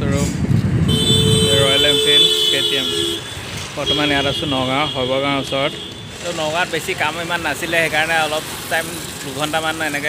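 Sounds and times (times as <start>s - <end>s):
road traffic: 0.0s - 10.0s
held vehicle horn: 0.8s - 6.2s.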